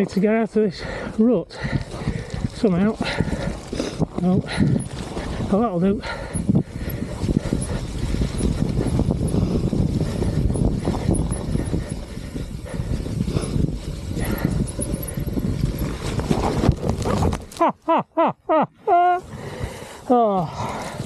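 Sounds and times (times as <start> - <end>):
bike rattling over bumpy ground: 0.0 - 17.7, 19.3 - 21.0
wind noise on microphone: 1.6 - 17.6.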